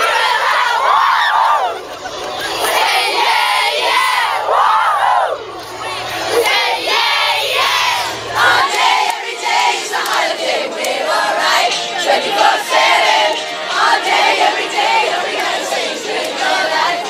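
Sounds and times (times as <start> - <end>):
crowd shouting and singing: 0.0 - 17.0.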